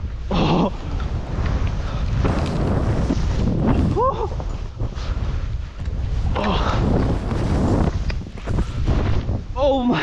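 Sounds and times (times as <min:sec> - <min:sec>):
wind buffeting microphone: 0:00.0 - 0:10.0
skis rushing through snow: 0:00.9 - 0:09.4.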